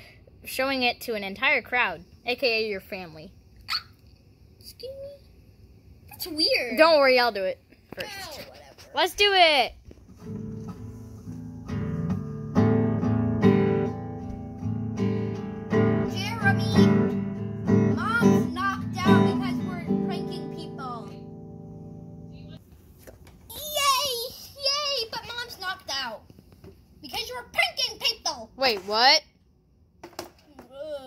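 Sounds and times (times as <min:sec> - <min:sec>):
child's voice: 0:04.6 - 0:05.3, 0:06.1 - 0:09.0, 0:16.1 - 0:17.1, 0:17.9 - 0:21.2, 0:23.5 - 0:26.3, 0:27.0 - 0:28.8, 0:30.4 - 0:31.0
acoustic guitar strummed clumsily: 0:10.1 - 0:22.4.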